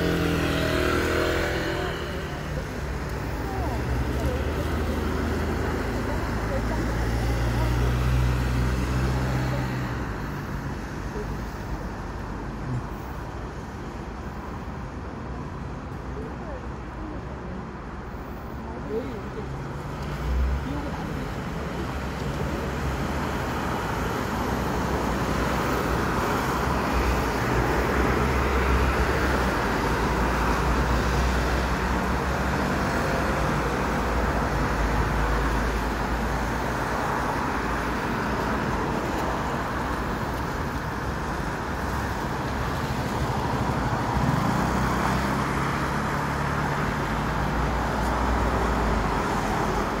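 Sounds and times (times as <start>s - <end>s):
vehicles passing: 0.0s - 50.0s.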